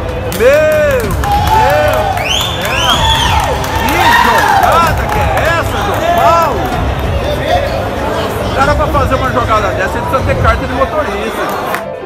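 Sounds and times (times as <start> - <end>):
spectators calling and whooping: 0.4 - 8.8.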